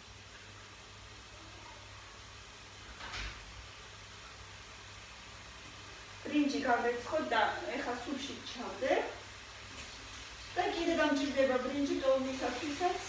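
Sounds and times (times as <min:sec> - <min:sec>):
faint hum and hiss: 0:00.0 - 0:13.0.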